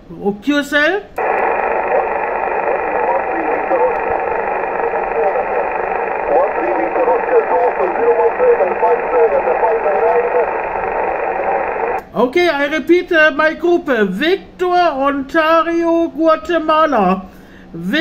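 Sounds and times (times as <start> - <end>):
radio static: 1.2 - 12.0.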